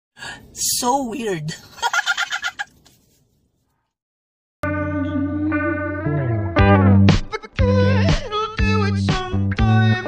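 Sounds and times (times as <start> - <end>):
high rapid cackling laugh: 1.8 - 2.9.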